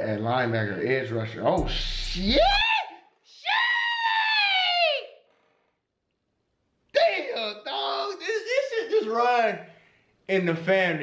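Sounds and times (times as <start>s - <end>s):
man screaming excitedly: 1.8s - 5.2s.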